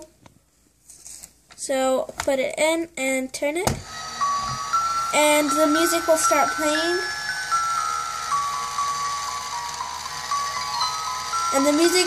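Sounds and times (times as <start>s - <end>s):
music box melody: 3.9s - 12.0s.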